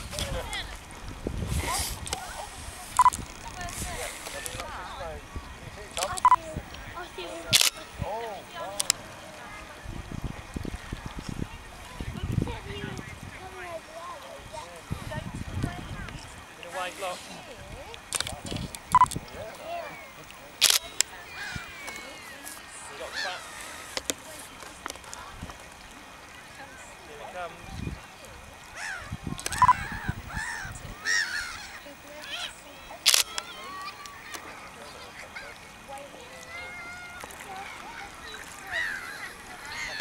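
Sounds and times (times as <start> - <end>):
people talking: 1.5 - 10.2, 11.2 - 25.5, 29.4 - 40.0
short beeps: 3.0 - 3.2, 6.2 - 6.4, 18.9 - 19.2, 29.5 - 29.9
sharp clicks: 33.0 - 34.4.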